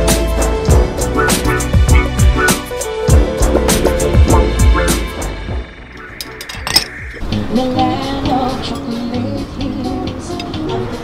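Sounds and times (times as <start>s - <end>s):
music: 0.0s - 11.0s
utensils clinking against dishes: 6.2s - 7.0s.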